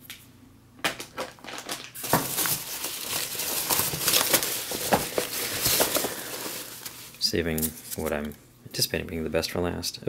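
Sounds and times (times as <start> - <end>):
packing peanuts rustling: 0.9 - 8.2.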